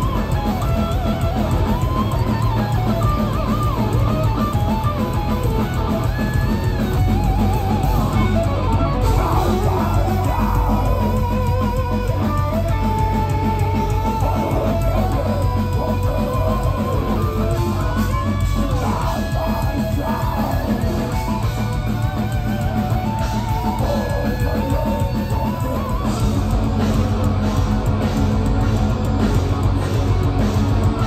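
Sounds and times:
bass and drums: 0.0s - 31.0s
distorted electric guitars: 0.0s - 31.0s.

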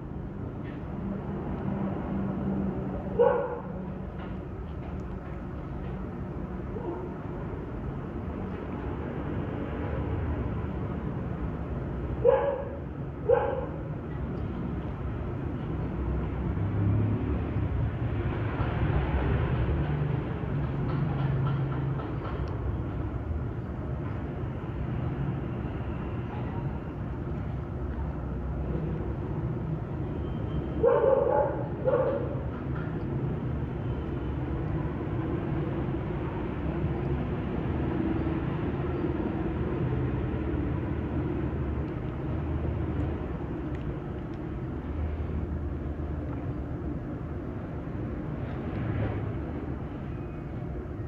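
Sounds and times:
dog barking: 3.2s - 3.7s, 6.8s - 7.1s, 12.2s - 13.9s, 30.8s - 32.4s.

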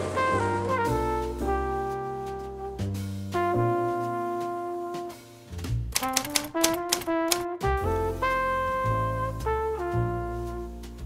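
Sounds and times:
brass-led background music: 0.0s - 11.0s
typewriter key clicks: 6.0s - 7.5s.

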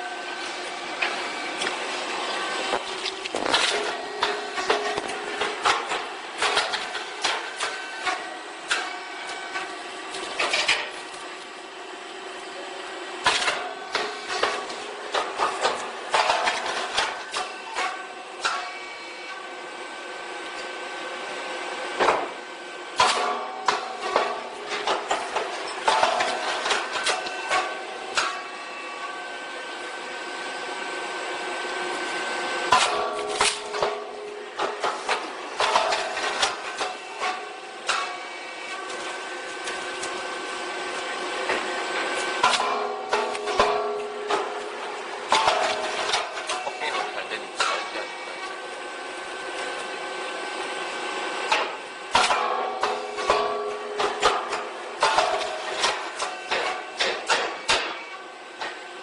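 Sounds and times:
steady machine hum: 0.0s - 59.0s
machine knocks and clatter: 42.4s - 48.1s, 51.5s - 58.8s.

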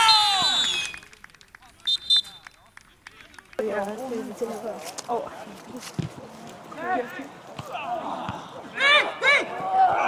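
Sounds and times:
referee whistle blasts: 0.0s - 1.1s, 1.9s - 2.5s.

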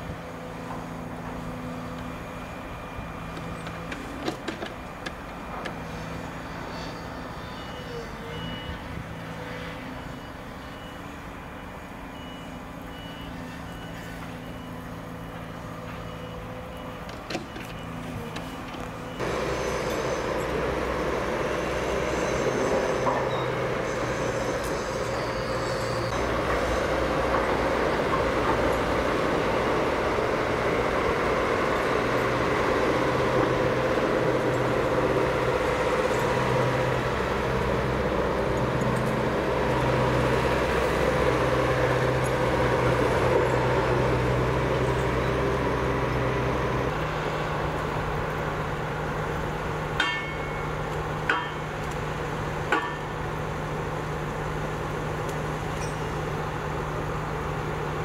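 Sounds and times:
distant diesel machinery running: 0.0s - 58.0s
nearby diesel engine running: 0.0s - 58.0s
reversing alarm beeping: 5.4s - 39.1s.

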